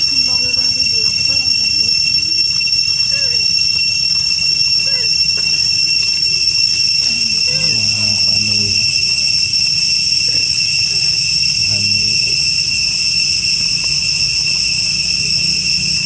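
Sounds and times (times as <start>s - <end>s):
faint voices murmuring: 0.0s - 16.0s
high-pitched insect drone: 0.0s - 16.0s.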